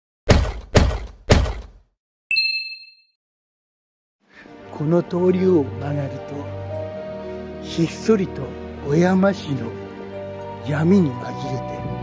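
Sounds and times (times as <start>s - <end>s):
hard thump: 0.3s - 1.8s
bright bell-like ding: 2.3s - 3.2s.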